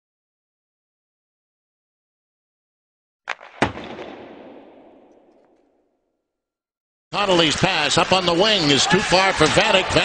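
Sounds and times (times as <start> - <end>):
sharp bangs with echo: 3.3 - 5.9.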